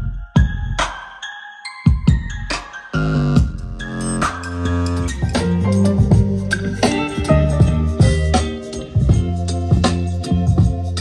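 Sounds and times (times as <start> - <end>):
music through speakers: 0.0 - 11.0.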